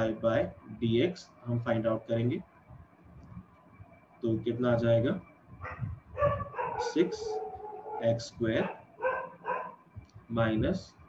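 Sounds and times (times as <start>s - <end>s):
steady pitched voice-like tone: 4.2s - 5.2s
person speaking: 4.3s - 5.2s, 6.2s - 8.8s, 10.3s - 10.9s.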